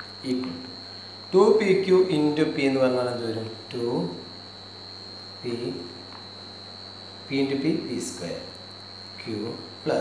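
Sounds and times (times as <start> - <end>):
electrical mains hum: 0.0 - 10.0
high-pitched whine: 0.0 - 10.0.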